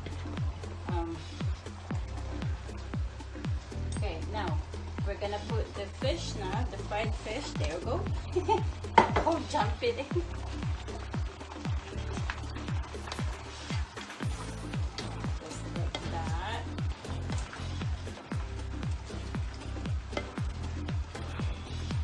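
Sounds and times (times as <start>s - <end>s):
background music with deep beat: 0.0s - 22.0s
faint sizzling in frying pan: 0.0s - 22.0s
wooden spatula stirring in pan: 4.6s - 22.0s.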